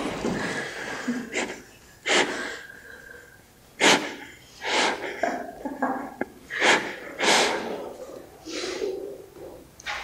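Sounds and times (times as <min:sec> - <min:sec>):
stifled breathy laughter: 0:00.3 - 0:03.2, 0:04.1 - 0:09.1.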